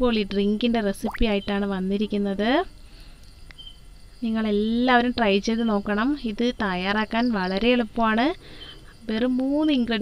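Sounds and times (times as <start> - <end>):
crickets chirring: 3.0 - 10.0.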